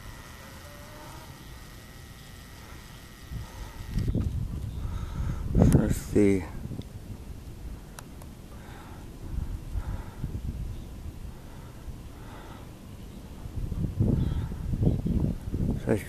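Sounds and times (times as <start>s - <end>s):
wind rumble on microphone: 3.2s - 8.0s, 9.0s - 12.4s, 13.3s - 16.0s.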